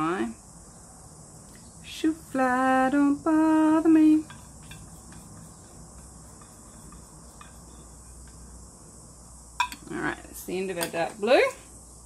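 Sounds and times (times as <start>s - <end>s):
thin high whine: 1.8s - 12.0s.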